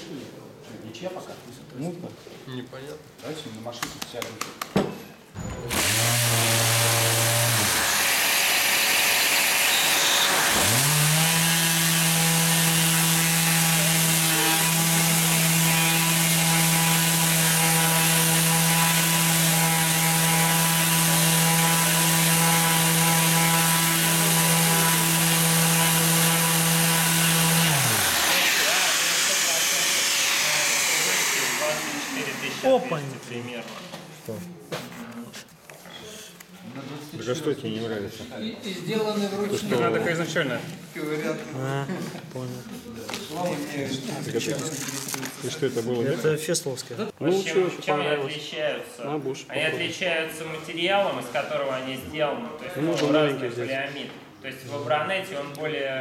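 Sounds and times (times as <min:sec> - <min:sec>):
orbital sander running: 0:05.7 - 0:33.6
dust extractor hiss: 0:23.8 - 0:33.4.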